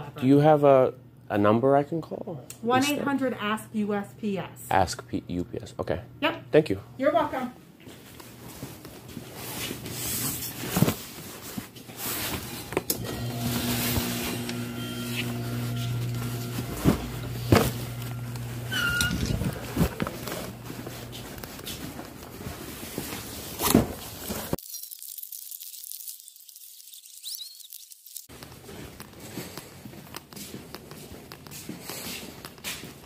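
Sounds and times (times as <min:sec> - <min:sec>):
door motor humming: 0:12.9 - 0:20.7
chirping squeak: 0:18.7 - 0:19.3, 0:26.2 - 0:28.2
high-pitched crackly hiss: 0:24.6 - 0:28.3.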